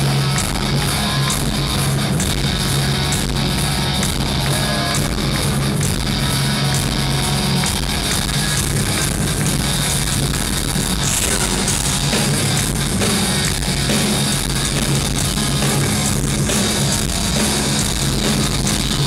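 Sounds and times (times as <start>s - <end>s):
bass guitar: 0.0s - 19.0s
drums: 0.0s - 19.0s
electric guitars: 0.0s - 19.0s.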